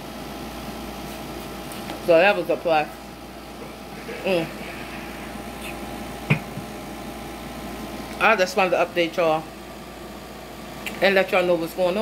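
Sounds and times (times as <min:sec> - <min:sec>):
electric fan whirring: 0:00.0 - 0:12.0.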